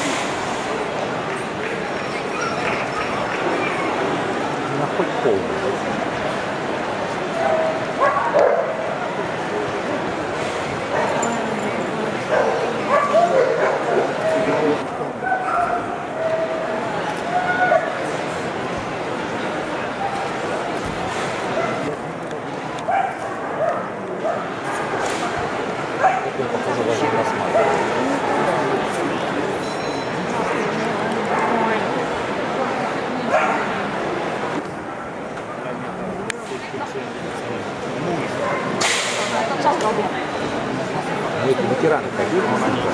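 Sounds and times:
crowd chatter: 0.0s - 42.9s
dogs barking: 7.6s - 8.9s, 12.3s - 14.2s, 22.9s - 24.9s, 26.0s - 26.4s.

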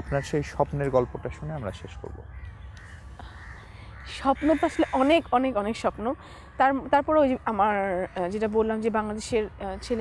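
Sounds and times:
crows cawing: 0.0s - 1.0s, 2.1s - 9.2s.

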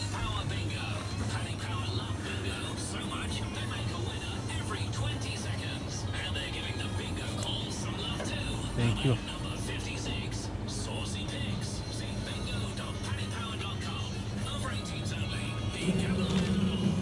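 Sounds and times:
shop background music: 0.0s - 17.0s
voices: 0.0s - 17.0s.

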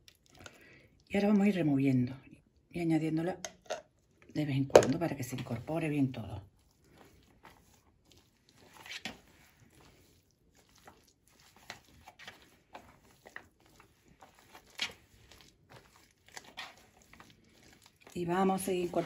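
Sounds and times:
spatula stirring potato salad: 3.5s - 19.0s.

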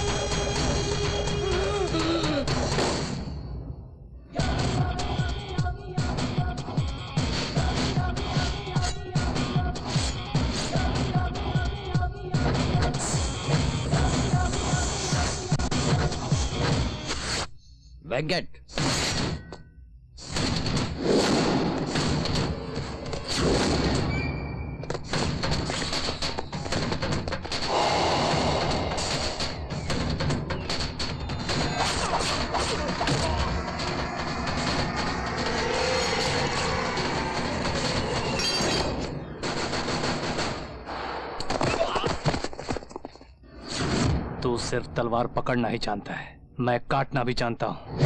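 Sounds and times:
thuds and crashes: 20.2s - 43.2s
punch and impact sound effects: 25.0s - 35.6s
dramatic background score: 27.6s - 41.1s.

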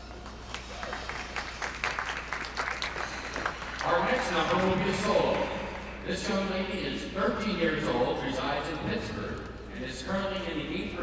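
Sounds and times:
audience clapping: 0.0s - 4.5s.

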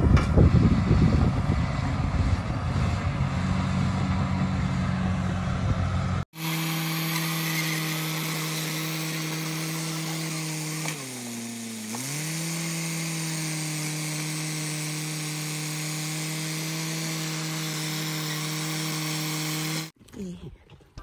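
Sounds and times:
bulldozer diesel engine revving: 0.0s - 19.9s.

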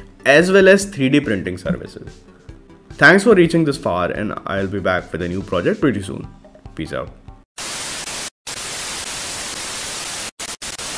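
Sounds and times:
tv static hiss: 7.6s - 10.9s.

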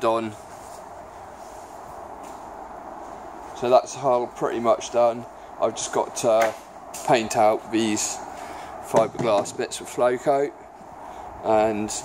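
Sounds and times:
faint constant hum: 0.0s - 12.0s
steady background hiss: 0.0s - 12.0s.

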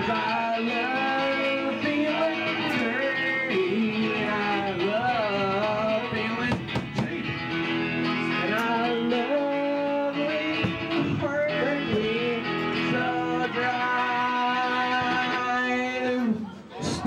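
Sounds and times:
man singing into microphone: 0.0s - 7.5s, 8.2s - 17.0s
drums: 0.0s - 17.0s
electric guitar: 0.0s - 17.0s.

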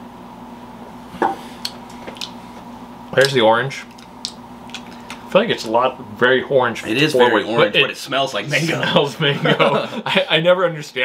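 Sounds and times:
room hum: 0.0s - 11.0s
glass set down on wooden table: 1.2s - 1.4s.

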